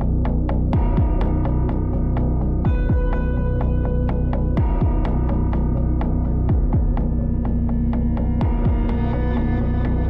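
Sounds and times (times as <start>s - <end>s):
falling bass thumps: 0.6s - 1.5s.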